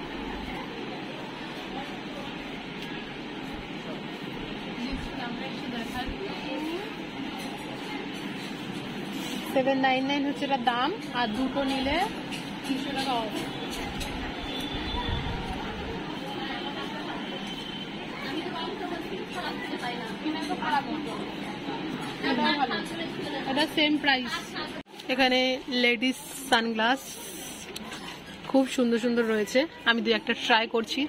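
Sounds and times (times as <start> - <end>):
busy store background noise: 0.0 - 31.0
woman speaking: 18.3 - 27.4, 28.5 - 31.0.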